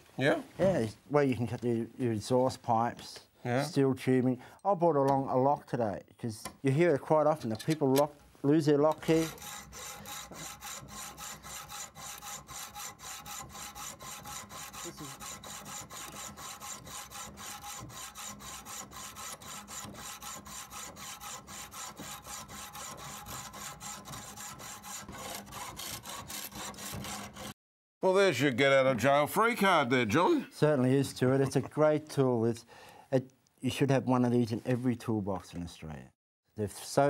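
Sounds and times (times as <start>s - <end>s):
hacksaw rasping through metal: 8.9s - 27.6s.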